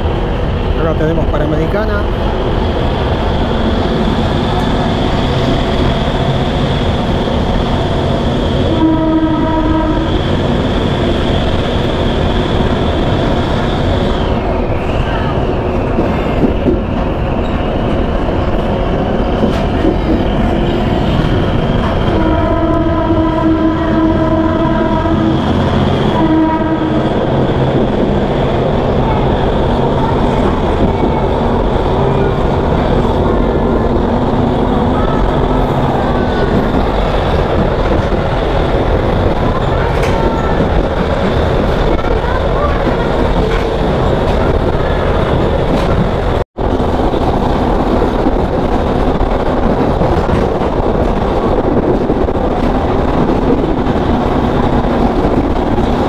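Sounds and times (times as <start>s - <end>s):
train wheels on rails: 0.0s - 56.0s
train horn blasts: 8.6s - 10.2s, 22.1s - 27.2s.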